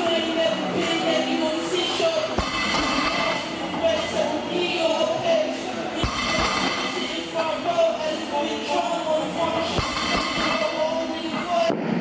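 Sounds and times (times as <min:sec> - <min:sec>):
background music with held tones: 0:00.0 - 0:11.7
low thumps: 0:02.4 - 0:03.4.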